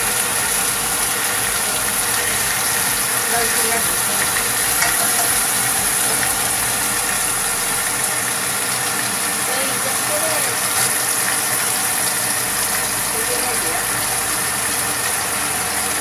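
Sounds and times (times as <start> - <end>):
meat sizzling in a wok: 0.0 - 16.0.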